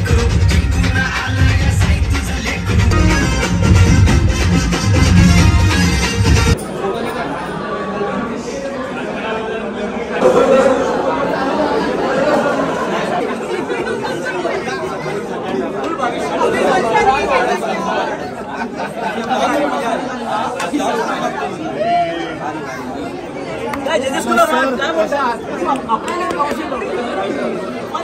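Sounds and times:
crowd chatter: 0:00.0 - 0:28.0.

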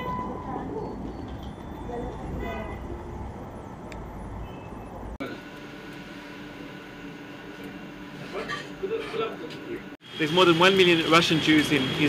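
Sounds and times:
low traffic rumble: 0:00.0 - 0:05.2.

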